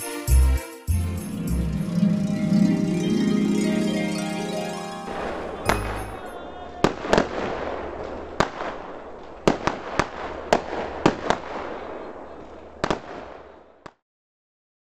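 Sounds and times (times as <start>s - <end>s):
fireworks crackling: 0.9s - 13.6s
fireworks bangs: 5.2s - 13.7s.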